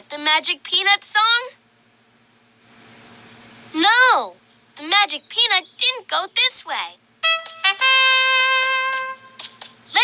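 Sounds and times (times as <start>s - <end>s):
trumpet elephant call: 7.2s - 9.4s.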